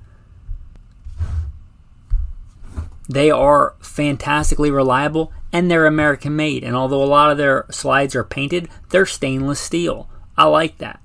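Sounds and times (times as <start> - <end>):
microphone handling thuds: 0.4 - 3.6, 4.2 - 5.4.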